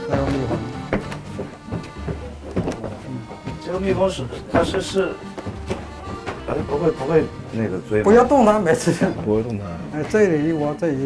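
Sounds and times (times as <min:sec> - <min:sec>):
footsteps on hollow wooden floorboards: 0:00.0 - 0:10.5.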